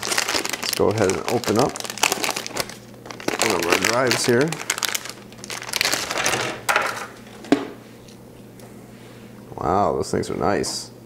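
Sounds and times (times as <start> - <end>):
plastic packaging crinkling: 0.0 - 7.6.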